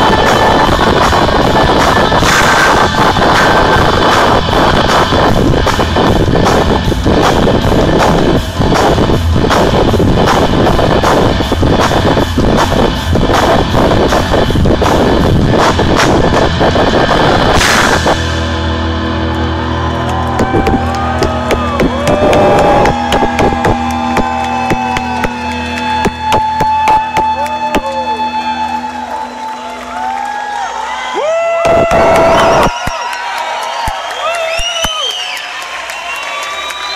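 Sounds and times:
drums: 0.0s - 29.5s, 31.2s - 36.9s
bending lead guitar notes: 0.0s - 30.2s
electric guitar: 0.0s - 30.7s.

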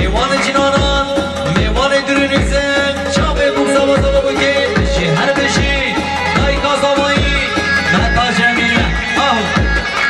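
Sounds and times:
heavy drum beat: 0.0s - 10.0s
loud amplified dance music: 0.0s - 10.0s.

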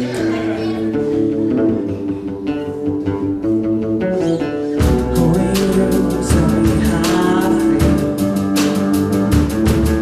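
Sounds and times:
guitars and bass playing: 0.0s - 10.0s.

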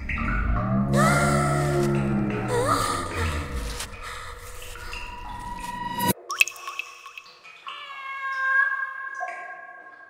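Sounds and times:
water drop plinks: 4.7s - 7.8s.

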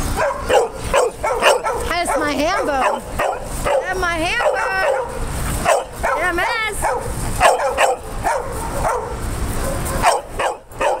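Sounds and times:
dog yipping and barking: 0.1s - 11.0s.

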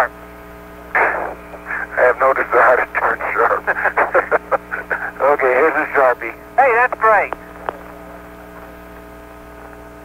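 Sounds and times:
steady electrical hum: 0.0s - 10.0s
faint radio hiss: 0.8s - 10.0s
faint static clicks: 0.9s - 10.0s.

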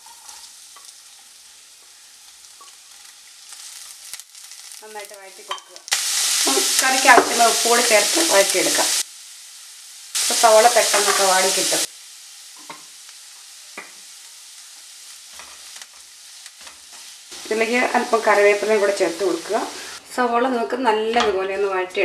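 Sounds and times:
onions sizzling in hot oil: 0.0s - 20.0s.

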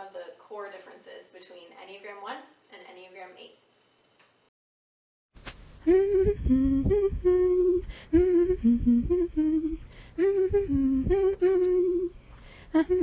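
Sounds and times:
person humming a tune: 5.8s - 13.0s.

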